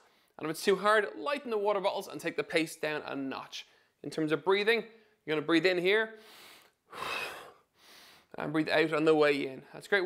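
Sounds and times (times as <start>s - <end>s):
man breathing in through mouth: 6.2s - 8.3s.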